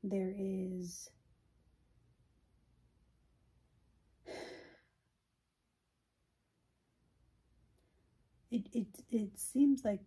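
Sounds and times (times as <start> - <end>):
woman sighing: 4.2 - 5.0.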